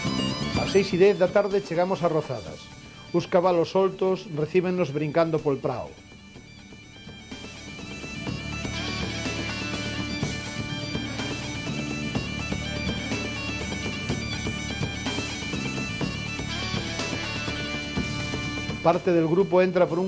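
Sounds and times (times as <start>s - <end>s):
bagpipe music with drone: 0.0s - 20.0s.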